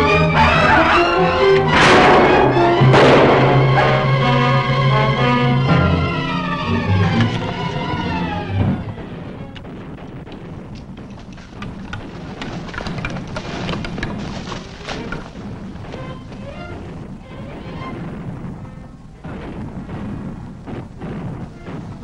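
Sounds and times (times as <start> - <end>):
orchestral film music: 0.0 - 9.8
sharp cracks and snaps: 9.5 - 16.0.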